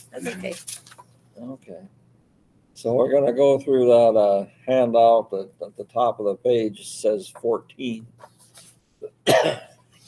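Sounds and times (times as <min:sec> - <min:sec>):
man coughing: 0:09.0 - 0:09.8.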